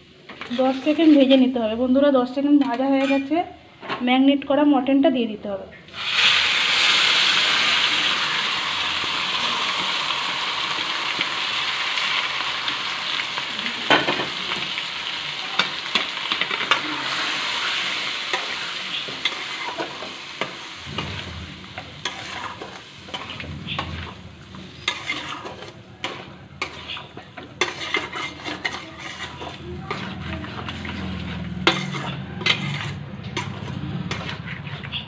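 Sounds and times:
meat sizzling in hot oil: 0:06.0 - 0:32.6
spatula scraping meat in pan: 0:15.6 - 0:21.1, 0:21.8 - 0:35.0.

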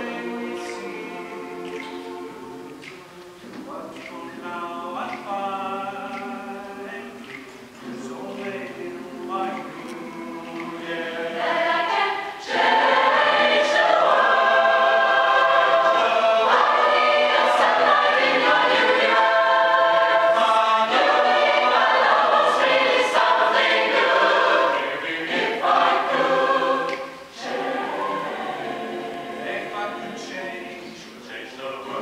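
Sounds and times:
mixed choir singing in harmony: 0:00.0 - 0:32.0.

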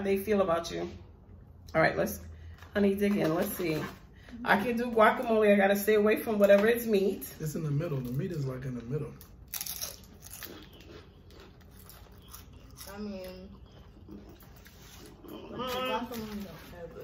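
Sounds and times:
chips crunching while chewed: 0:08.0 - 0:16.7.

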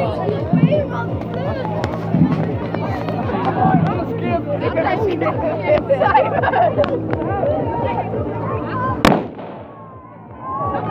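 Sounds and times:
people talking: 0:00.0 - 0:10.9
firecracker bang: 0:09.0 - 0:10.0.

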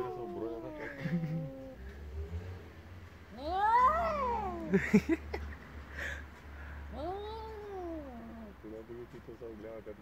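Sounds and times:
cat yowling: 0:00.0 - 0:01.9, 0:03.4 - 0:04.9, 0:06.9 - 0:08.6.

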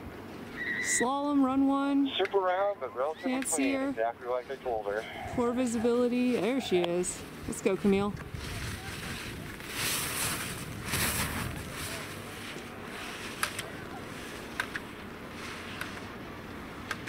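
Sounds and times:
wind noise on microphone: 0:06.8 - 0:12.5
skis hissing on hard snow: 0:08.4 - 0:13.5.

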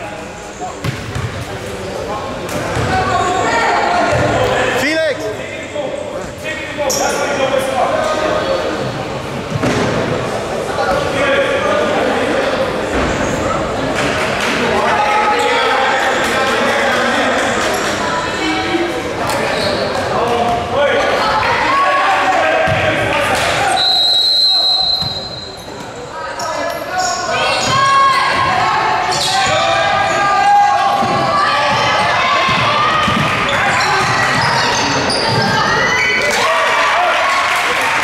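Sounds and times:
voices echoing in gym: 0:00.0 - 0:38.0
referee's whistle: 0:23.7 - 0:25.6.

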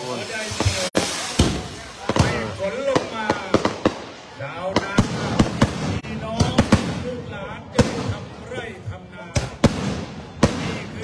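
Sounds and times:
firecrackers banging: 0:00.0 - 0:11.0
people talking: 0:00.0 - 0:11.0.

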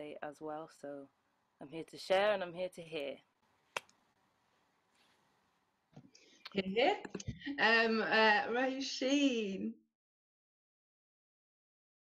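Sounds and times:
faint background hiss: 0:00.0 - 0:09.7
woman speaking: 0:06.5 - 0:09.9.

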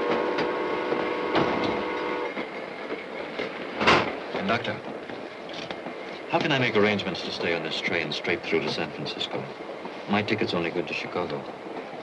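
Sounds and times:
train horn chord: 0:00.0 - 0:02.4
train wheels clacking on rail joints: 0:00.0 - 0:12.0.

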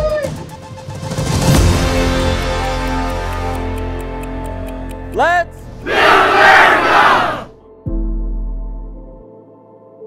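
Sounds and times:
group of young people shouting: 0:05.8 - 0:07.5.

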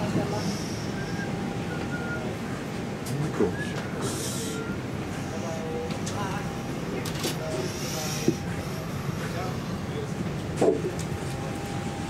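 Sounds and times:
airliner cabin hum: 0:00.0 - 0:12.0
faint voices: 0:00.0 - 0:12.0.

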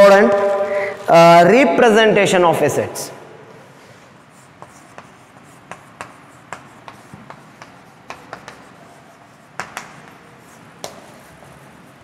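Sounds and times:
chalk tapping and scratching on board: 0:03.8 - 0:12.0.

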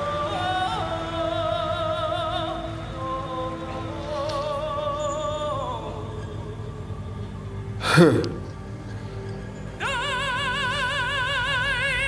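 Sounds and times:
soft instrumental backing: 0:03.0 - 0:09.8
short loud laugh: 0:07.8 - 0:08.5
man singing with vibrato: 0:09.8 - 0:12.0.

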